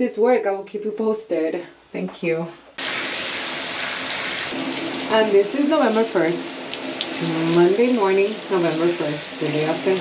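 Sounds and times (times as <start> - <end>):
shower spray hissing into bathtub: 2.8 - 10.0.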